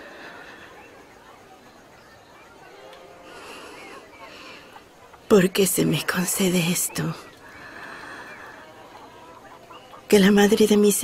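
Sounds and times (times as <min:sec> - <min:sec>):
faint chickens clucking: 0:00.0 - 0:11.0.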